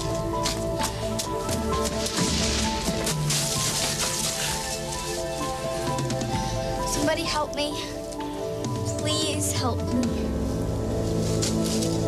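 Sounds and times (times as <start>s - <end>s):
rain falling: 0.0s - 7.3s
sombre background music: 0.0s - 12.0s.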